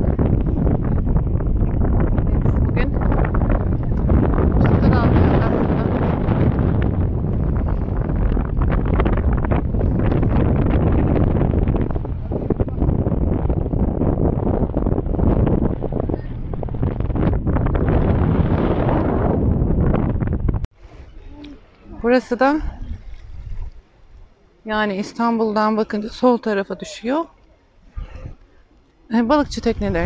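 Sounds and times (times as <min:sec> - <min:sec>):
wind buffeting microphone: 0:00.0 - 0:30.0.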